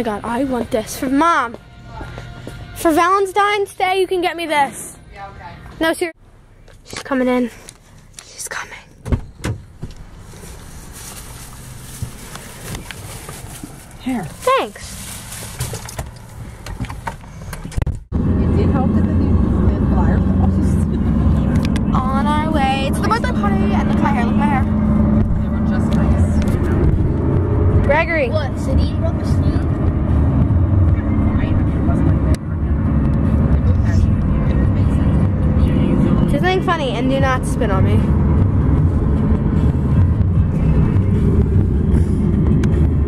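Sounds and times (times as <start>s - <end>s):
car engine and tyre rumble: 5.2s - 43.0s
voices talking: 18.2s - 27.1s, 30.7s - 38.1s.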